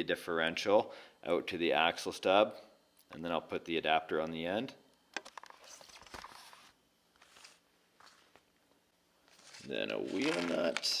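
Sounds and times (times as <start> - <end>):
soft rustles: 5.5 - 8.5, 9.2 - 10.8.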